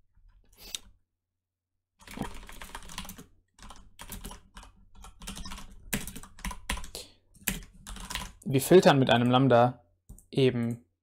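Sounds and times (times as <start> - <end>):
typing on computer keyboard: 2.0 - 8.4.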